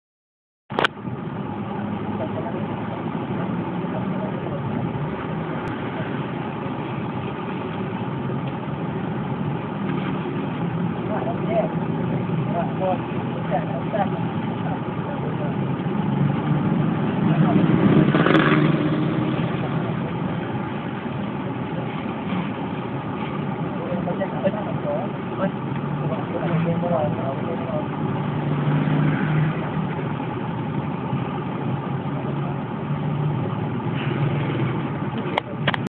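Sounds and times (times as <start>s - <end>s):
people's voices: 1.6s - 35.9s.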